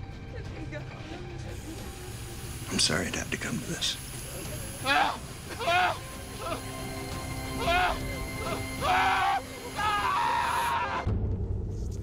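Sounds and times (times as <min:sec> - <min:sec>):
sustained background music tones: 0:00.0 - 0:12.0
person crying out anguished: 0:04.8 - 0:06.7, 0:07.6 - 0:11.1.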